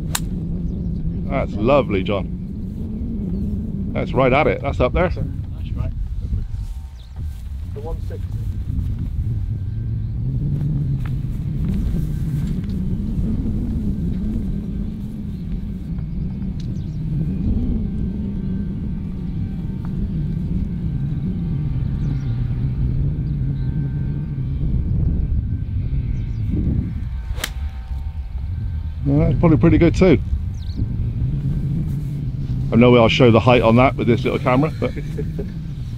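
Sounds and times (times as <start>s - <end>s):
golf club striking ball: 0.0s - 0.4s, 27.3s - 28.0s
low rumble: 0.0s - 35.9s.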